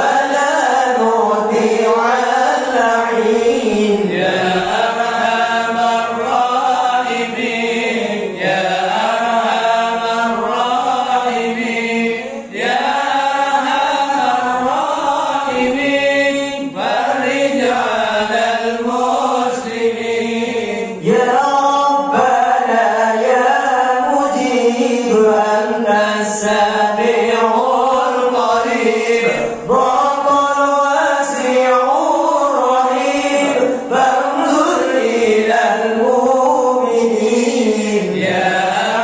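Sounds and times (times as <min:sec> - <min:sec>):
group of men chanting: 0:00.0 - 0:39.0.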